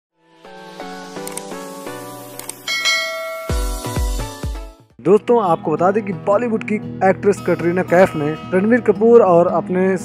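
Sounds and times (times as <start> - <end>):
intro music: 0.2 - 4.9
bell chime: 2.7 - 4.1.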